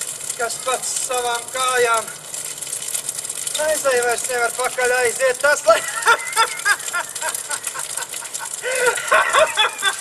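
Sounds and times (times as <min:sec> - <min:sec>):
man cackling: 0:05.7 - 0:10.0.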